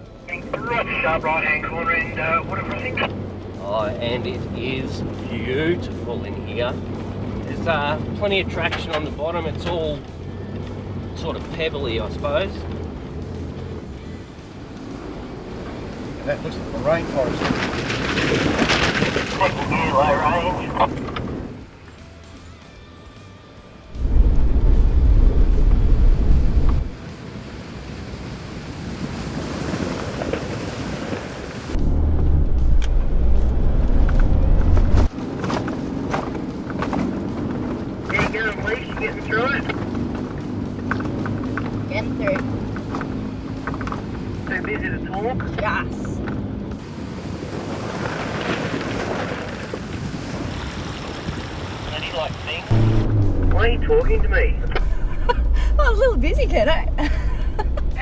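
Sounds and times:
water splashing and rushing: 0.0s - 22.2s, 23.9s - 45.8s, 46.4s - 58.0s
background music: 19.7s - 25.5s, 52.7s - 58.0s
car engine running: 23.9s - 27.0s, 31.8s - 46.8s, 52.5s - 58.0s.

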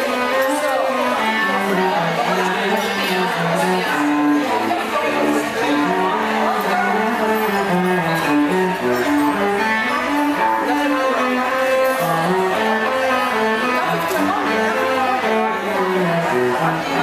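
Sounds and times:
string ensemble playing: 0.0s - 17.0s.

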